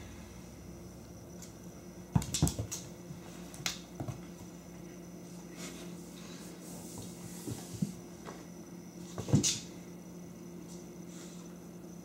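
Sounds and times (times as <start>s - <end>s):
taps and thumps on hard floor: 2.1s - 2.9s.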